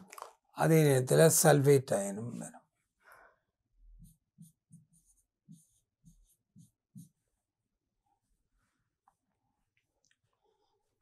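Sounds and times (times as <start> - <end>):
pen strokes on a board: 3.8 - 7.6.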